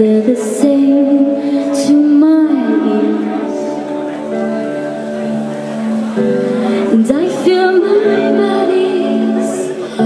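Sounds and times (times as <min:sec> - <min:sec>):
woman singing: 0:00.0 - 0:03.8, 0:06.8 - 0:10.0
indie pop band playing: 0:00.0 - 0:10.0.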